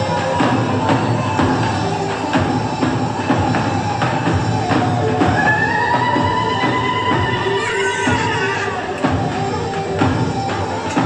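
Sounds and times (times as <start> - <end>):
folk dance music: 0.0 - 11.0.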